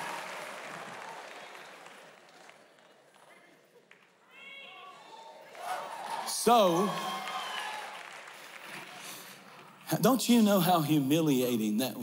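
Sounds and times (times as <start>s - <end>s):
congregation applause: 0.0s - 9.9s.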